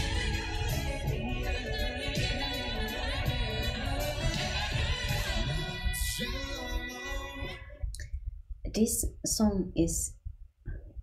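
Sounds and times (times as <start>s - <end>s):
woman singing: 0.0s - 7.9s.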